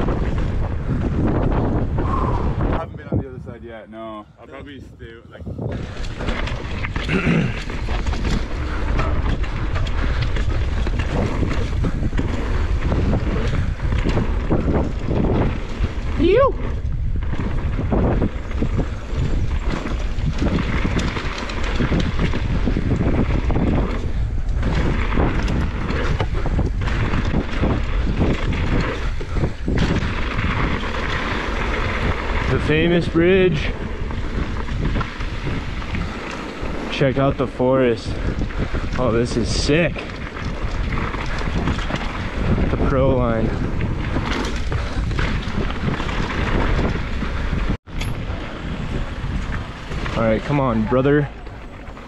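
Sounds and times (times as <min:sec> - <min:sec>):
bike tyres rattling on dirt: 0:00.0 - 0:03.9, 0:05.5 - 0:52.0
wind buffeting microphone: 0:00.0 - 0:52.0.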